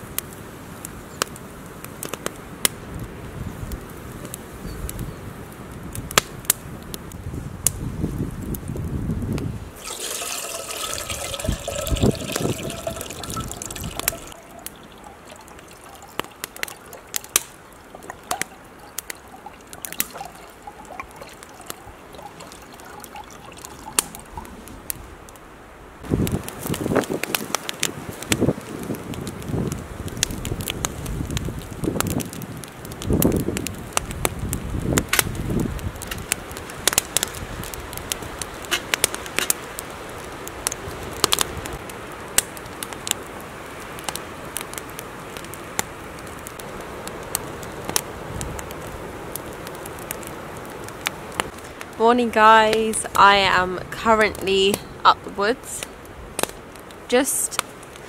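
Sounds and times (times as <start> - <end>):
campfire crackling and popping: 0.0 - 58.0
water trickling into metal kettle: 9.8 - 24.5.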